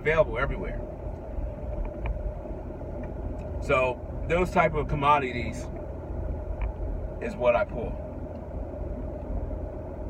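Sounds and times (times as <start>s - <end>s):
car cabin road and engine noise: 0.0s - 10.0s.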